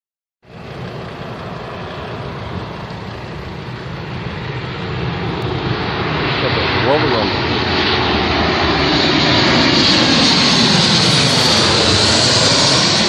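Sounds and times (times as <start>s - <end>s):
jet airliner engine rushing: 0.5s - 13.0s.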